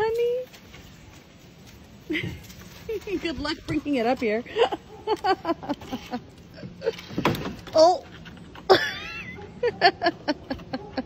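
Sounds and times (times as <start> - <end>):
woman laughing: 2.1 - 3.4, 4.4 - 7.2, 8.6 - 11.0.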